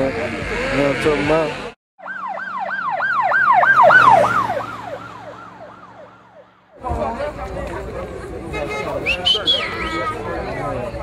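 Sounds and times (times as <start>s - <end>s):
police siren yelping: 2.0s - 6.8s.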